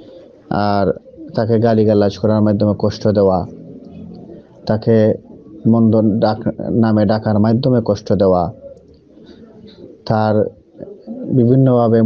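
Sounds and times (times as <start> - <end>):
man speaking: 0.5 - 3.6, 4.4 - 8.7, 10.0 - 12.0.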